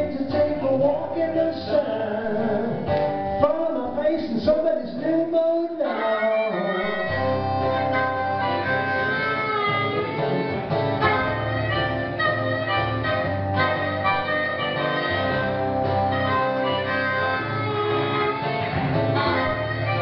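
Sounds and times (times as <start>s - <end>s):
harmonica solo: 5.8s - 20.0s.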